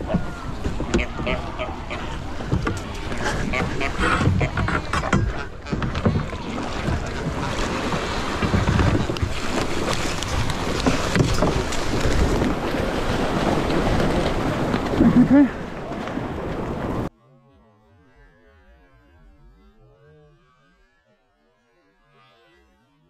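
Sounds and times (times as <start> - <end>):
wind buffeting microphone: 0.0 - 17.1
water splashing and lapping: 0.0 - 17.2.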